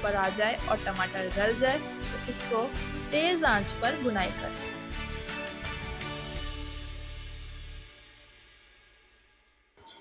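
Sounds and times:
background music: 0.0 - 9.2.

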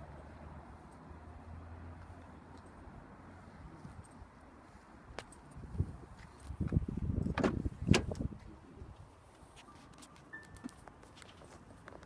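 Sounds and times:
car door opening: 7.2 - 8.2.

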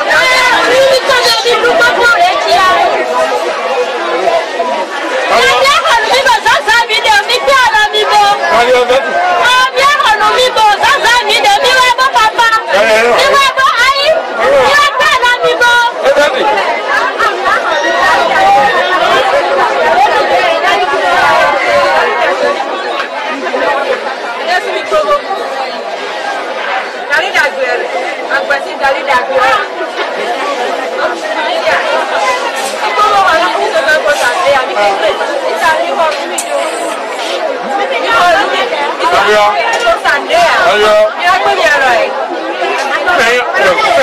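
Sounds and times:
people chattering: 0.0 - 44.0.

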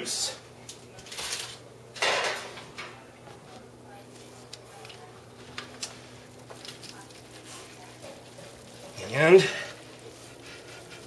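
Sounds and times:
foil rustling: 4.1 - 11.0.

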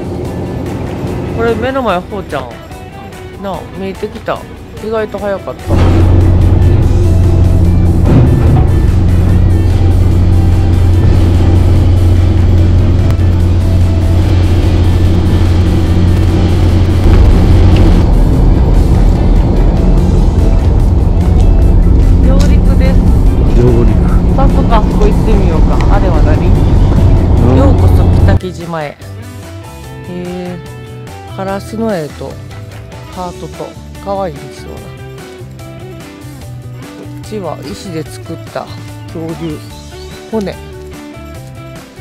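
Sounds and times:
diesel engine droning: 0.0 - 28.4.

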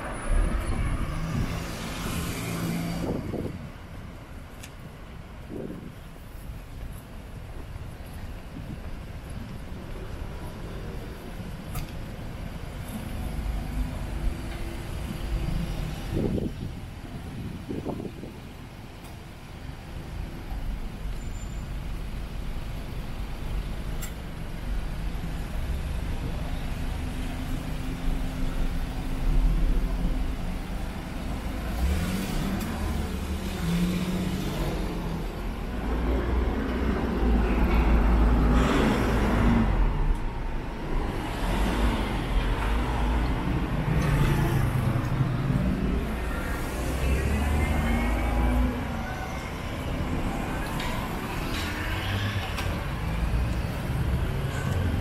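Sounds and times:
vehicles driving past: 0.0 - 55.0.

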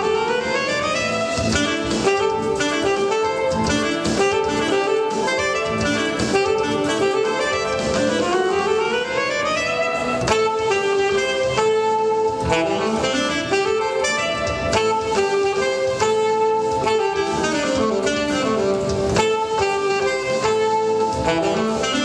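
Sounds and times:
saxophone playing jazz: 0.0 - 22.0.

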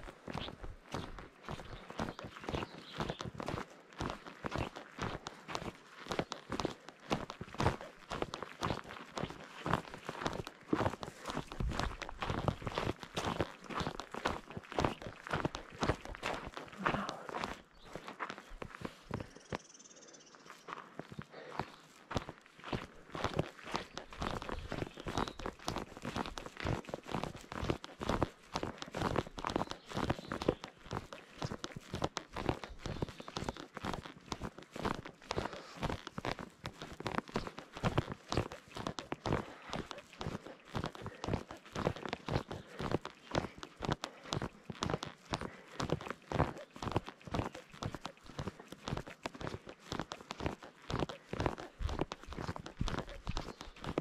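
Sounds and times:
footsteps on gravel: 0.0 - 54.0.

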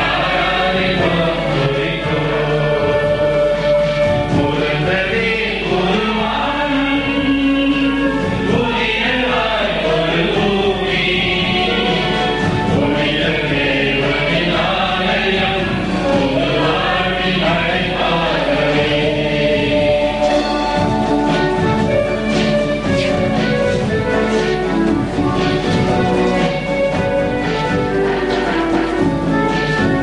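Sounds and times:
choir singing a hymn: 0.0 - 30.0.

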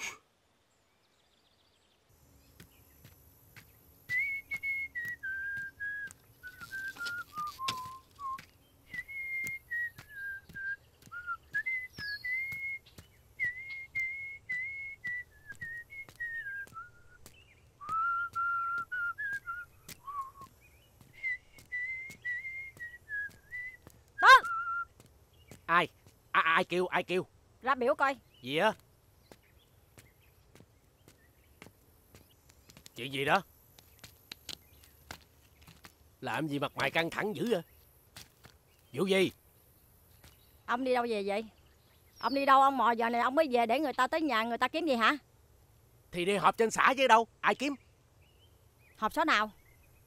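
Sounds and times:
person whistling a slow tune: 4.1 - 12.8, 13.4 - 17.2, 17.8 - 20.5, 21.1 - 24.9.

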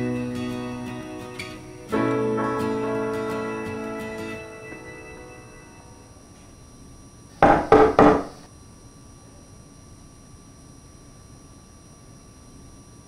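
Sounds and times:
acoustic guitar piece: 0.0 - 6.0
knocks on wooden door: 7.4 - 8.4.

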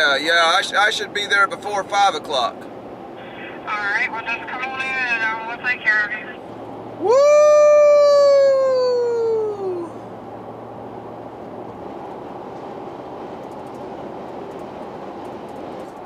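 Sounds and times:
road noise inside vehicle cab: 0.0 - 16.0
man whooping: 7.0 - 10.0.

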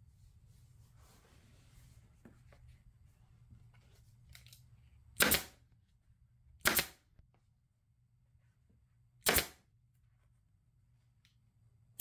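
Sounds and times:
pneumatic stapler firing: 6.6 - 7.0, 9.2 - 9.6.

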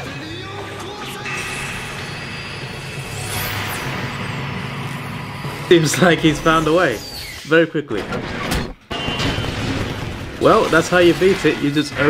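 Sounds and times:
sharp explosion crash: 8.9 - 12.0.

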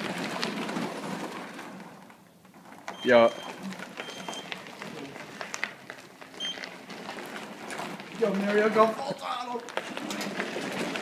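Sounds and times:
tyres crackling on gritty floor: 0.0 - 11.0.

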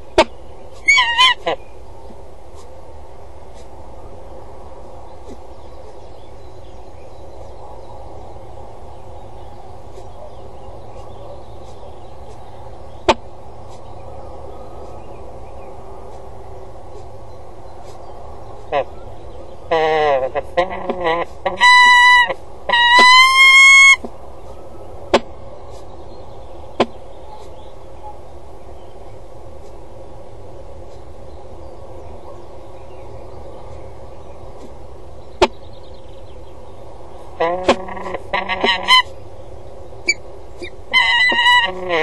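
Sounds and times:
falcon calling: 0.0 - 1.6, 19.7 - 24.1, 37.3 - 39.2, 40.1 - 42.0.

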